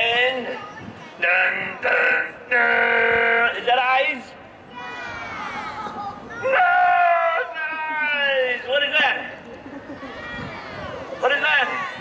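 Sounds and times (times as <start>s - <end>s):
voices calling in sing-song tones: 0.0s - 12.0s.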